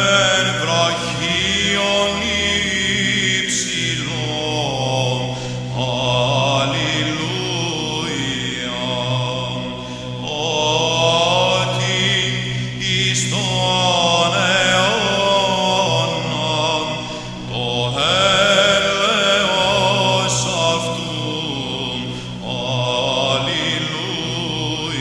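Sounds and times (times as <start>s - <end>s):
low held vocal drone: 0.0s - 25.0s
voices singing slow chant: 0.0s - 25.0s.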